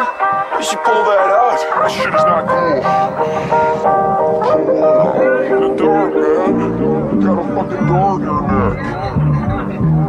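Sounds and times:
plucked string music: 0.0s - 10.0s
voices: 0.0s - 10.0s.

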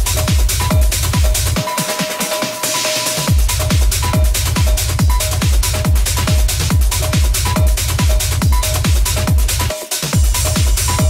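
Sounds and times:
hi-hats: 0.0s - 11.0s
kick drum: 0.0s - 11.0s
techno music: 0.0s - 11.0s.

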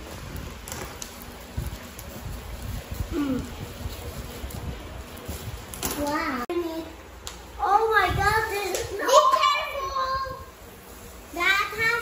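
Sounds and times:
sharp crackles: 0.0s - 6.4s
bubble wrap rustling: 0.0s - 6.6s, 7.7s - 12.0s.

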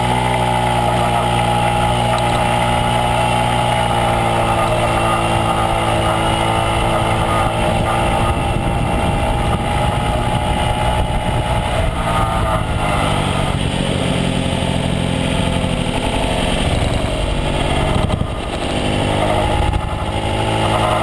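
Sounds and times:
scooter engine running: 0.0s - 21.0s.

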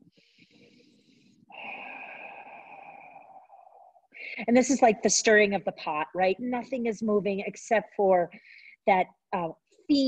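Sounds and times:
woman breathing: 0.0s - 4.5s, 8.3s - 8.8s.

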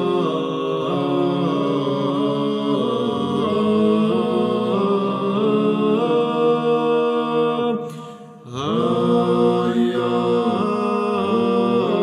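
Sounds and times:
male choir chanting: 0.0s - 12.0s.

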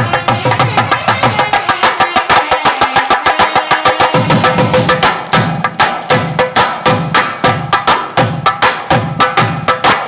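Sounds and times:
fast percussion beating: 0.0s - 10.0s.

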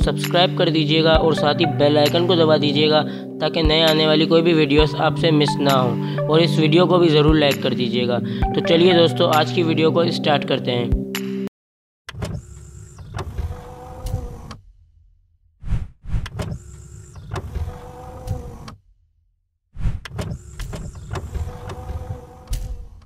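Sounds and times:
mechanical whirring and sliding: 12.1s - 14.7s, 15.6s - 18.9s, 19.8s - 23.0s.

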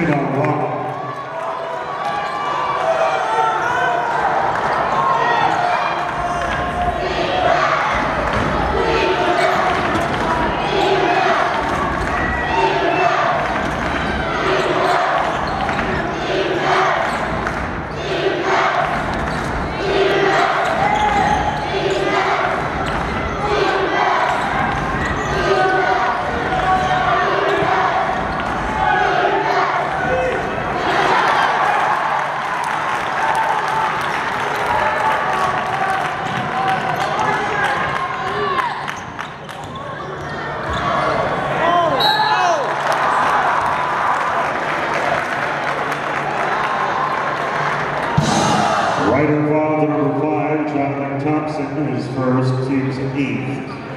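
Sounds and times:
voices in an arena: 0.0s - 53.9s.

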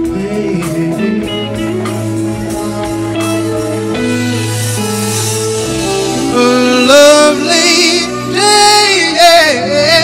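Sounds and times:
melody with bent notes: 0.0s - 10.0s
steady bass: 0.0s - 10.0s.

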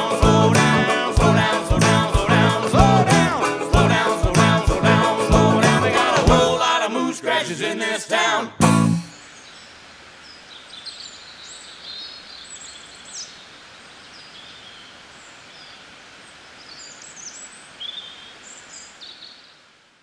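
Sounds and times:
steady background hiss: 6.8s - 20.0s
songbirds chirping: 9.1s - 19.7s.

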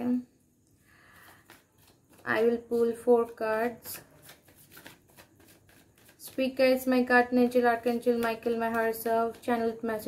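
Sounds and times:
cards being shuffled: 1.1s - 6.9s, 7.8s - 10.0s.

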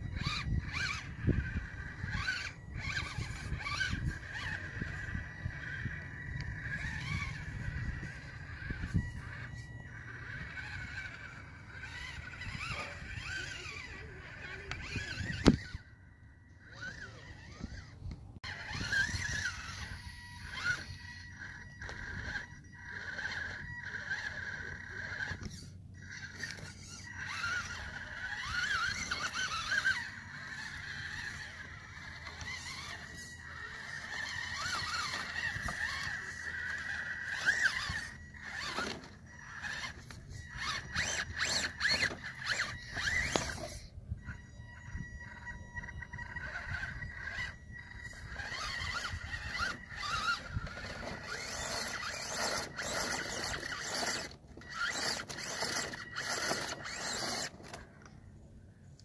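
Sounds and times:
sharp clicks and scrapes: 0.0s - 15.8s, 16.8s - 43.9s, 46.3s - 58.2s
electric motor and gearbox whining: 0.0s - 59.0s.

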